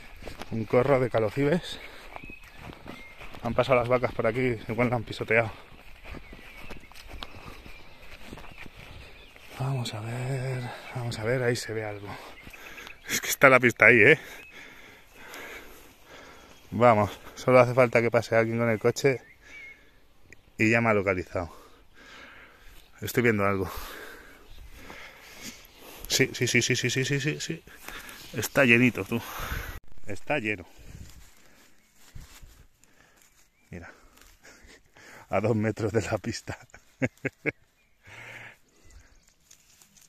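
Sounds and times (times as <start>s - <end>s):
footsteps through grass: 0.0s - 18.9s, 19.7s - 40.0s.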